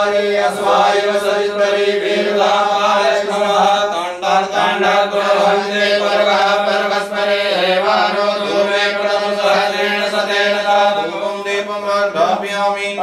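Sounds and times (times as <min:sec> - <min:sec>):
melodic chanting: 0:00.0 - 0:13.0.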